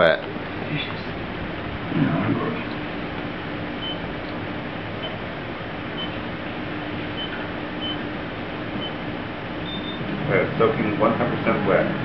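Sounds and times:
laser machine hum and fan rush: 0.0s - 12.0s.

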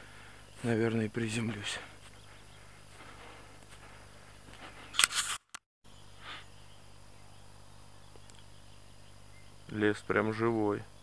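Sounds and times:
quiet outdoor ambience: 0.0s - 11.0s
camera handling clatter: 4.9s - 5.4s.

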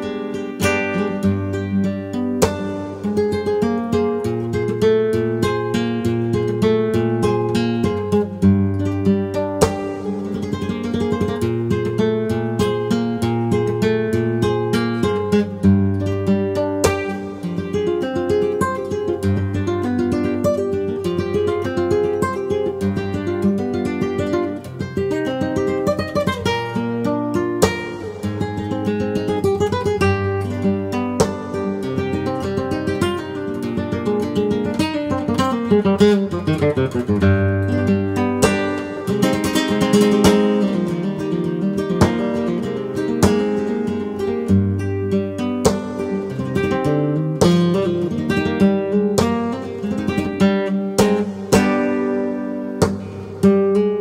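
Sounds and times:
solo flamenco guitar: 0.0s - 54.0s.

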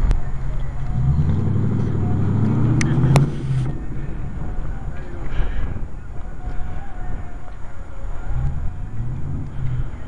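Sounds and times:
car engine running: 0.0s - 7.1s, 7.8s - 10.0s.

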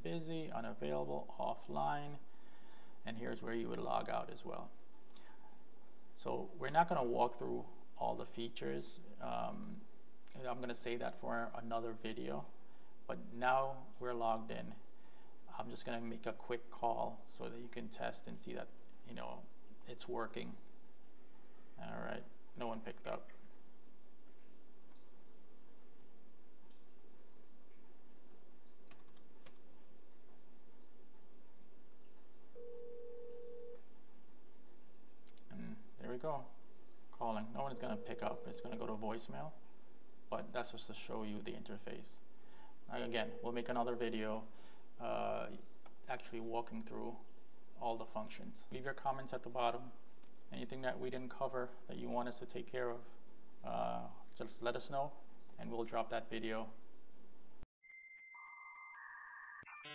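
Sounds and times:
lower steady electronic tone: 32.5s - 34.0s, 37.4s - 39.3s, 42.9s - 44.1s, 57.8s - 59.9s
phone ringback tone: 32.6s - 33.8s, 37.8s - 38.8s
high electronic beep tone: 37.8s - 38.8s, 57.8s - 59.9s.

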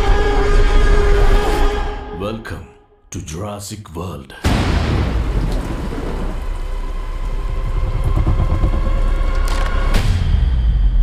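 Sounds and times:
deep steady rumble: 5.2s - 10.2s.

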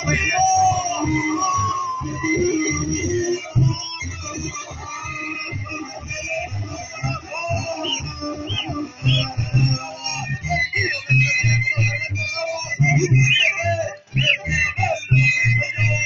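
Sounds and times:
music with steady beat: 0.0s - 16.0s.

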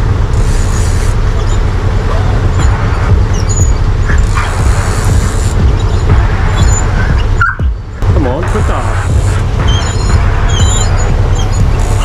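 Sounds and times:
steady low rumble: 0.0s - 12.0s
dog whining and yelping: 1.4s - 4.6s, 5.8s - 7.8s, 9.6s - 12.0s.

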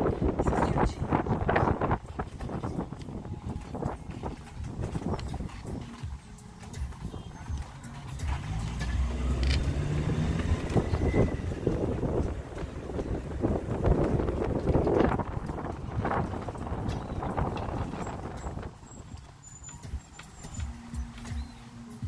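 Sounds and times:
car engine: 0.0s - 22.0s.

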